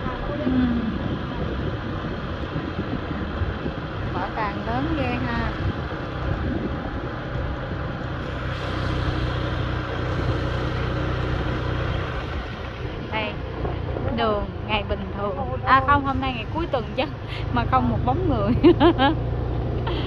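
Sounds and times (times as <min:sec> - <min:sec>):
low engine hum: 0:00.0 - 0:20.0
road and wind noise: 0:00.0 - 0:20.0.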